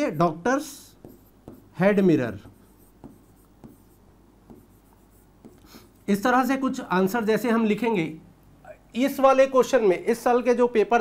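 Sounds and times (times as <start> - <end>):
marker pen writing on whiteboard: 0.8 - 6.3.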